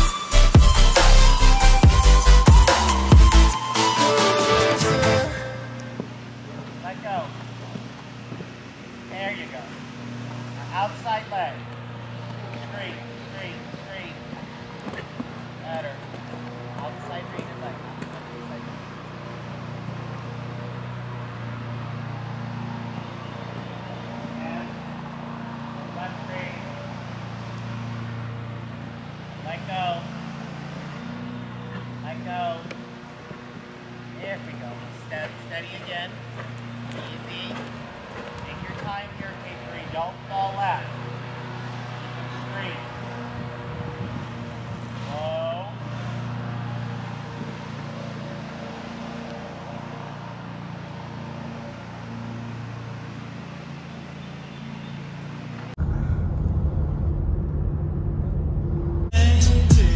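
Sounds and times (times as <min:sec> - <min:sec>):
distant voice calls: 0:01.0 - 0:55.5
low mechanical hum: 0:05.2 - 0:59.1.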